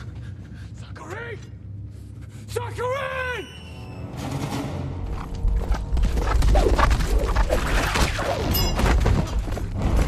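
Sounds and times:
film music: 0.1s - 7.7s.

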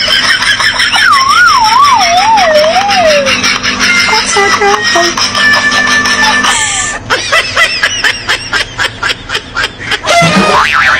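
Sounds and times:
wavering tone sliding down: 1.3s - 4.5s.

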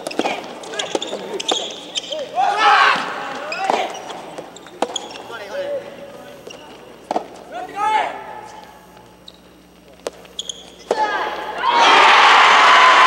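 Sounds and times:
loud shouting: 2.4s - 3.2s, 11.0s - 13.0s.

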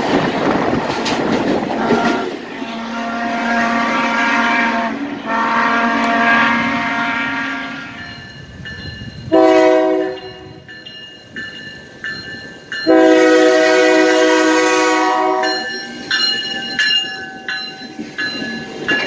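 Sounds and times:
locomotive air horn: 1.8s - 8.0s, 9.3s - 10.5s, 12.9s - 15.6s.

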